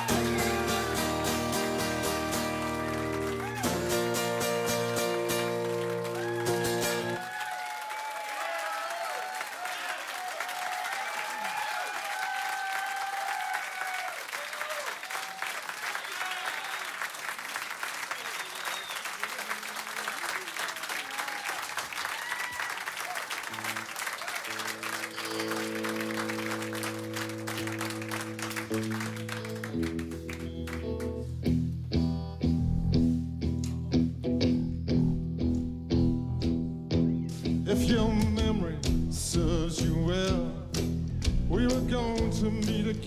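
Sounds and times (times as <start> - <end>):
acoustic guitar chord ringing: 0.0 - 6.1
guitar playing held notes: 0.0 - 7.2, 24.5 - 39.2
audience applauding and cheering: 0.0 - 31.3.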